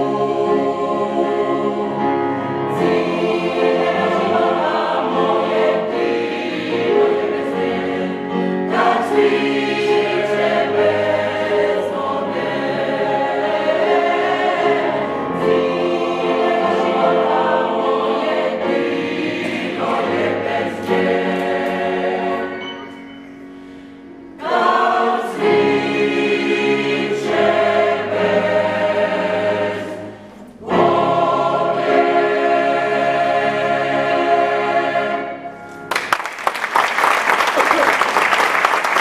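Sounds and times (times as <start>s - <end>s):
mixed choir singing in harmony: 0.0s - 35.8s.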